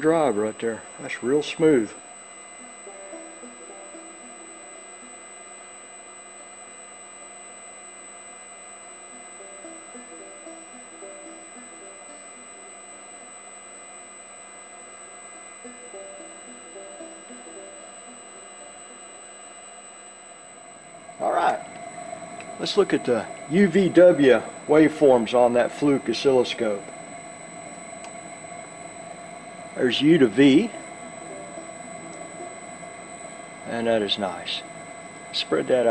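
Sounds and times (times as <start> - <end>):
electric motor humming with high whine: 0.0 - 35.9.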